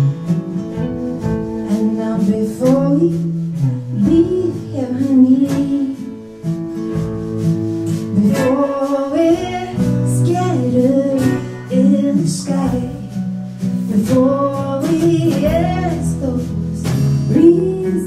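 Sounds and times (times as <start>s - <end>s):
acoustic guitar: 0.0s - 18.0s
woman singing slow song: 1.6s - 6.4s, 8.0s - 18.0s.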